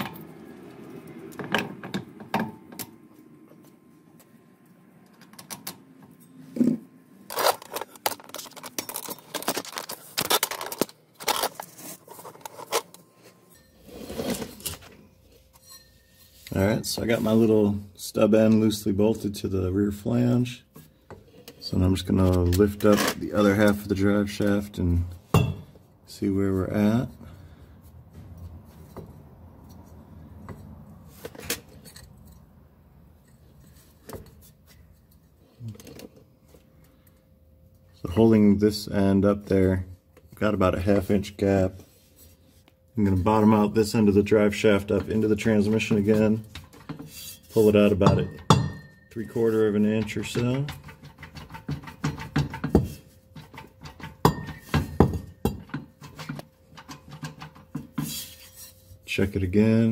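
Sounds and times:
metallic clinks and knocks: 48.0s - 58.2s.

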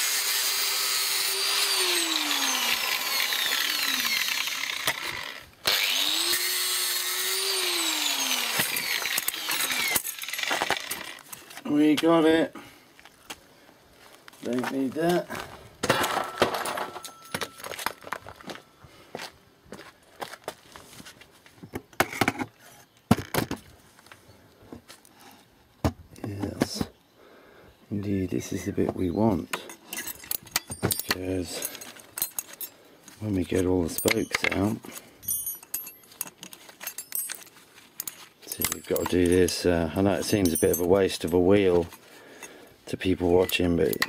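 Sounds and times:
metallic clinks and knocks: 15.8s - 18.5s, 29.5s - 42.6s
metallic ring: 15.9s - 17.9s, 33.9s - 39.6s.

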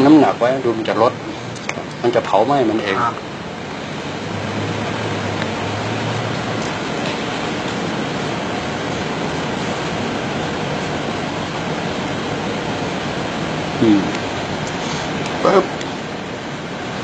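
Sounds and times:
steady rushing noise: 0.0s - 17.0s.

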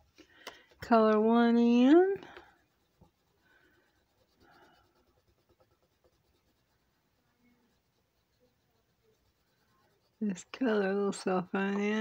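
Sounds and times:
marker scratching on paper: 0.6s - 12.0s.

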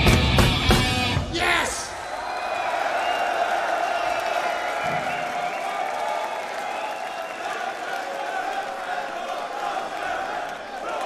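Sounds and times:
crowd cheering and clapping: 0.0s - 11.0s.

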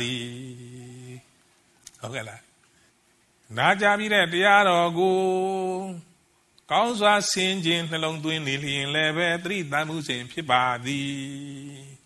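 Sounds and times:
man chanting: 0.0s - 1.3s, 3.5s - 6.1s, 6.7s - 12.0s.

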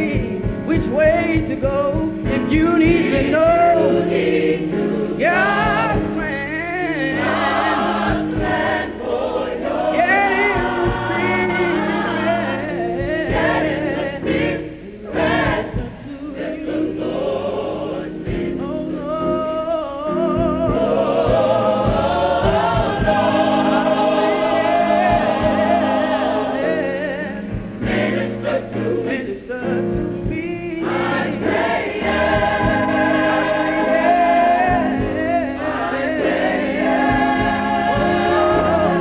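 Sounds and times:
gospel choir singing: 0.0s - 39.0s.

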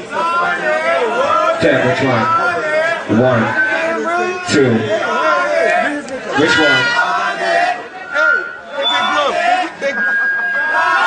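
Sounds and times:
high-pitched voices chattering: 0.0s - 11.0s.

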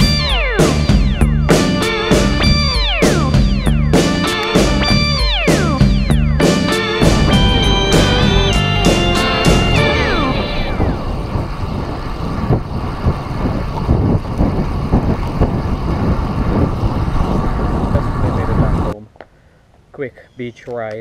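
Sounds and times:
rock music track: 0.0s - 11.5s
wind buffeting microphone: 6.9s - 19.0s.

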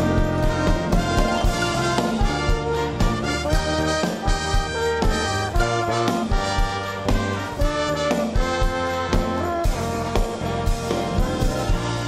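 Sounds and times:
orchestra with violins playing: 0.0s - 12.0s.

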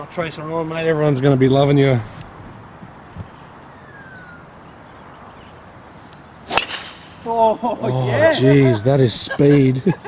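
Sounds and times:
outdoor background: 0.0s - 10.0s
golf driver striking ball: 6.4s - 7.5s.

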